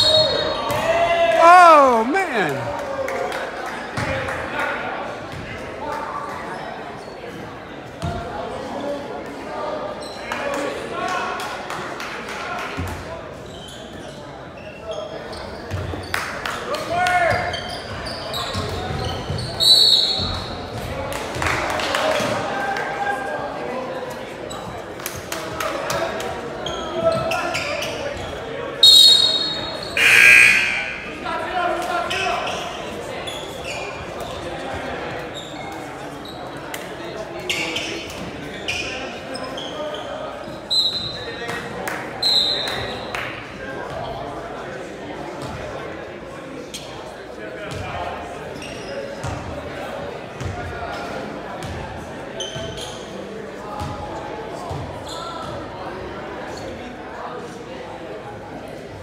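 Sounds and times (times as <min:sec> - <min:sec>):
voices echoing in hall: 0:00.0 - 0:59.0.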